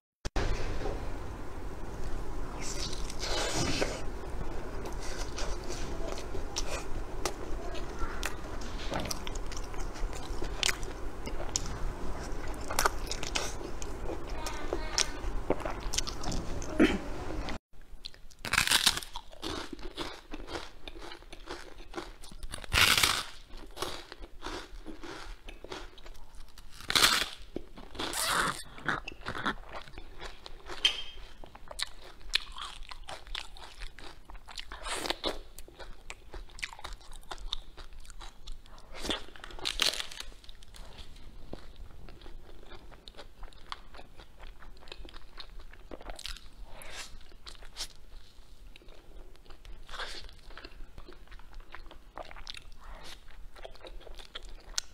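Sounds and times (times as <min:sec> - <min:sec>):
person chewing food: 0:02.6 - 0:16.8, 0:18.0 - 0:54.9
crunchy bites: 0:18.0 - 0:30.9.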